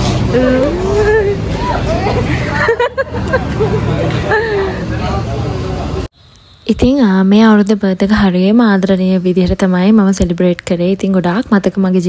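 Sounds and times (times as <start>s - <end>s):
crowd chatter: 0.0s - 6.1s.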